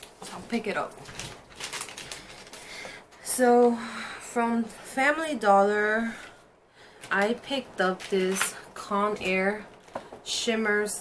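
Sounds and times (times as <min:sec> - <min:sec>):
paper receipt rustling: 0:00.0 - 0:02.9.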